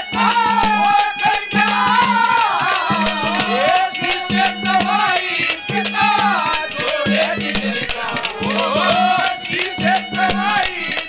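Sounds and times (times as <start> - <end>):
gliding folk melody: 0.0 - 11.0
hand drum strokes: 0.0 - 11.0
rattling percussion: 0.0 - 11.0.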